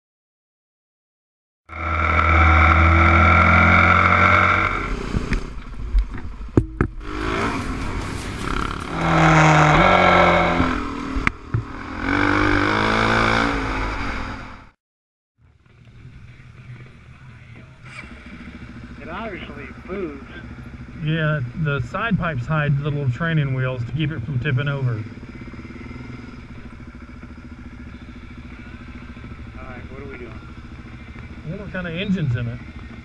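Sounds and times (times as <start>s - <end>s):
motorcycle engines revving: 1.7s - 14.8s, 15.4s - 33.0s.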